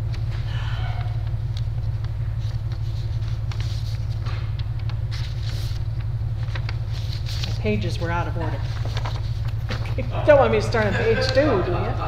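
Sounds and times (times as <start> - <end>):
paper sheets rustling: 0.0 - 12.0
steady low hum: 0.0 - 12.0.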